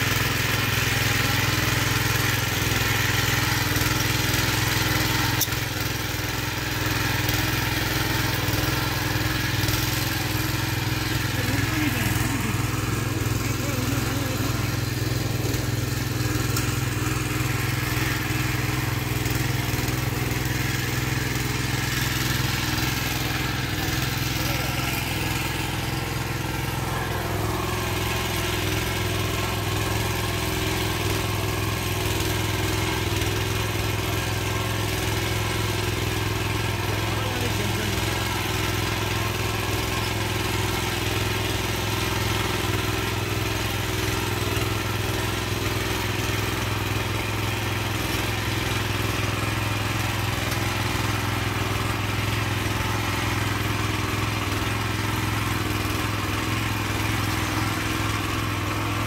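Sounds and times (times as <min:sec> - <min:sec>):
small tiller engine running: 0:00.0 - 0:59.0.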